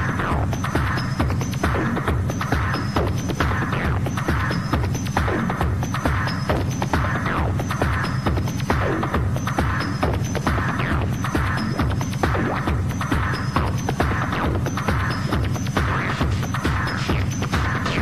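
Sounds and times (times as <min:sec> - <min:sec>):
noisy looping percussion: 0:00.0 - 0:18.0
techno kick drum: 0:00.0 - 0:18.0
throbbing bass line: 0:00.0 - 0:18.0.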